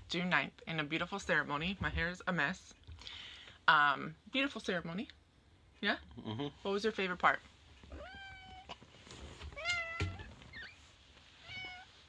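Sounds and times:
cat meowing: 7.9 - 8.8, 9.6 - 10.3, 11.4 - 12.0.

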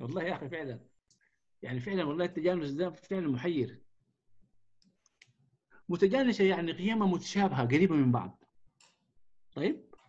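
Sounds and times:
faint small clicks: 1.0 - 1.3, 4.8 - 5.4, 8.7 - 9.1.

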